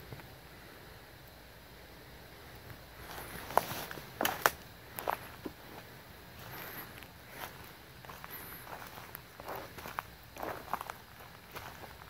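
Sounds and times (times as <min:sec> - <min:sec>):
footsteps crunching through dry leaves: 0:03.0 - 0:12.0.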